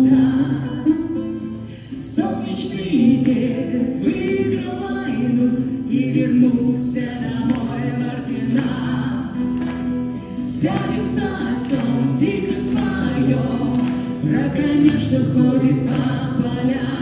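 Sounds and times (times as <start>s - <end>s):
acoustic guitar: 0.0s - 17.0s
voices singing: 2.0s - 9.8s, 10.4s - 17.0s.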